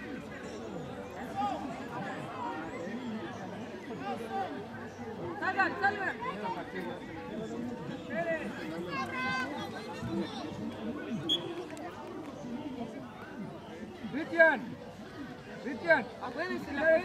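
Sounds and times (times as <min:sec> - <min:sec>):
people talking and calling out: 0:00.0 - 0:17.0.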